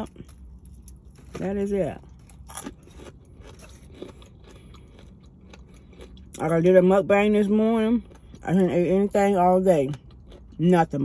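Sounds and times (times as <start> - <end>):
person chewing crunchy food: 0.0 - 11.0.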